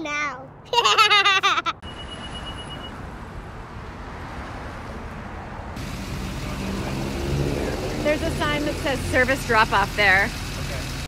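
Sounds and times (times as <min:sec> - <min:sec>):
road traffic noise: 0:00.0 - 0:11.0
van engine and tyres: 0:00.0 - 0:11.0.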